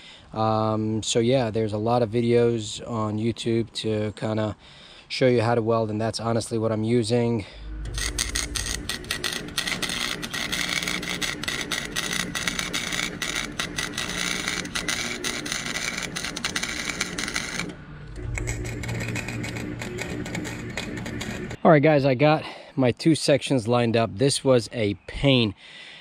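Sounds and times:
welder arc crackling: 7.7s - 21.6s.

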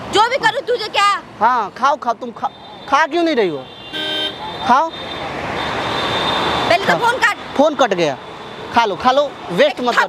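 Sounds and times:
passing vehicle: 0.0s - 10.0s
vehicle horn toot: 2.4s - 6.5s.

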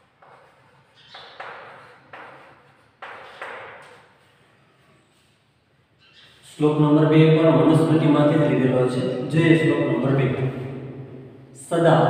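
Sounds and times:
chalk scratching on blackboard: 0.0s - 5.4s.

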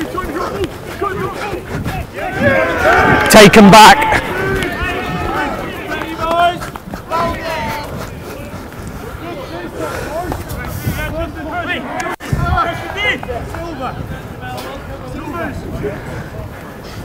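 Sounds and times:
players shouting: 0.0s - 10.5s
outdoor background noise: 0.0s - 17.0s.

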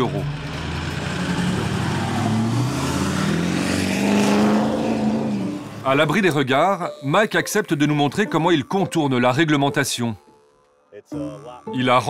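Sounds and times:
diesel pickup engine accelerating: 0.0s - 6.4s.

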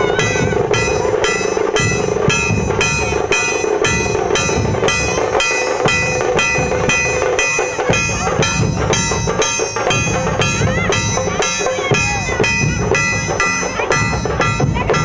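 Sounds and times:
metal percussion strikes ringing: 0.0s - 15.0s
steady drumming: 0.0s - 15.0s.

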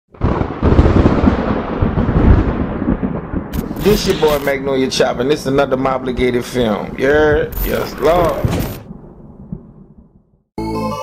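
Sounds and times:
rolling thunder-like rumble: 0.1s - 10.4s.

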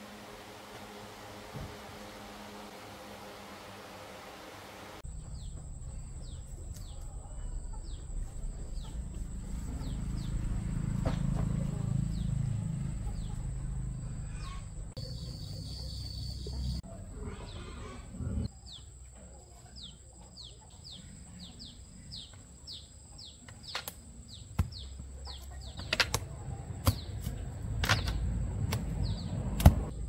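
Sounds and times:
bamboo pole knocking fruit: 23.6s - 25.0s, 25.7s - 29.9s.

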